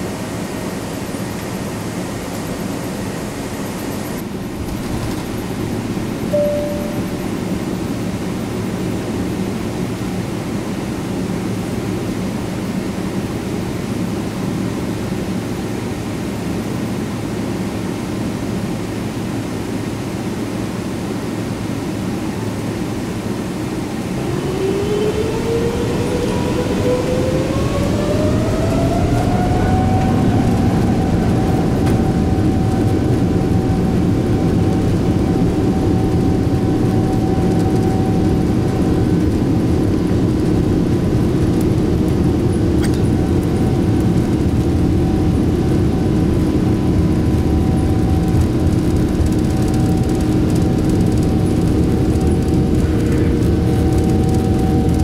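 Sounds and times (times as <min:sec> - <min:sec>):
airliner cabin rumble and hiss: 0:00.0 - 0:55.0
jet engine whine: 0:00.0 - 0:55.0
single tone: 0:06.3 - 0:07.6.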